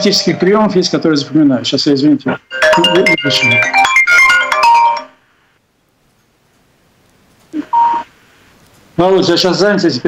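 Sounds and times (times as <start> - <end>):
phone ringtone melody: 2.5 - 5.2.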